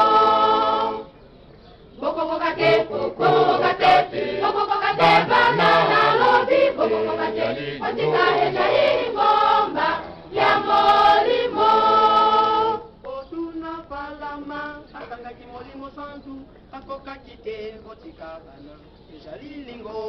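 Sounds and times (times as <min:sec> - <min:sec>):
choir singing in harmony: 0:00.0 - 0:01.3, 0:01.9 - 0:15.1.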